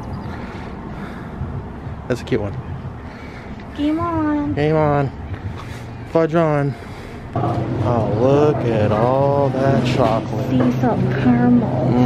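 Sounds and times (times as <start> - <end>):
distant street traffic: 0.0 - 12.0.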